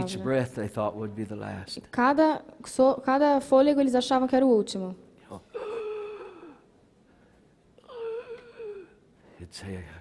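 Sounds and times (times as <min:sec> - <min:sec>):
person moaning breaths: 0:05.5 - 0:06.7, 0:07.8 - 0:09.0.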